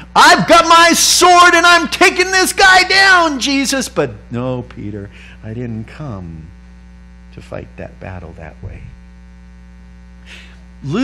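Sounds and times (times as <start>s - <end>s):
man speaking: 0.0s - 6.6s, 7.4s - 9.0s
electrical mains hum: 0.0s - 11.0s.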